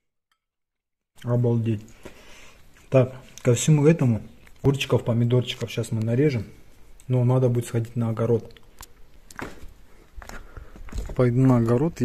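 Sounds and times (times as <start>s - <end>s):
shuffling footsteps: 9.2s - 12.0s.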